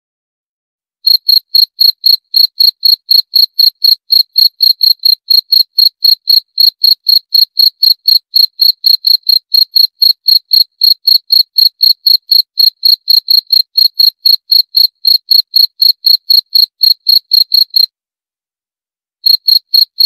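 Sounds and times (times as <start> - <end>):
cricket chirping: 1.1 - 17.9, 19.2 - 20.0.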